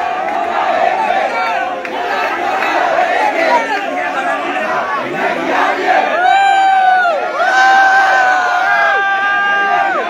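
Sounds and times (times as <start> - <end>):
crowd shouting: 0.0 - 10.0
long held shout: 6.1 - 10.0.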